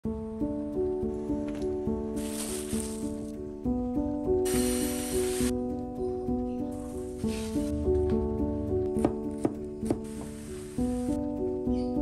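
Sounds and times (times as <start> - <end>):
soft melodic background music: 0.0 - 12.0.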